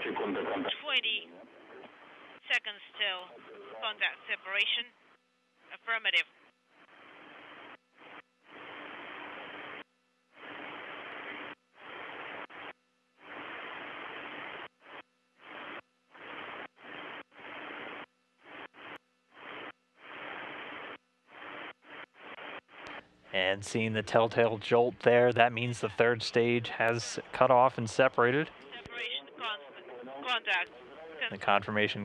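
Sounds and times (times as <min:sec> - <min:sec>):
radio static bursts: 0:00.0 - 0:01.2, 0:06.8 - 0:09.8, 0:10.4 - 0:32.0.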